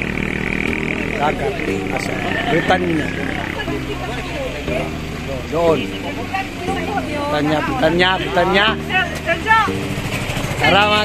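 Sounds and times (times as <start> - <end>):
vehicle engine idling: 0.0 - 11.0
voices: 0.0 - 11.0.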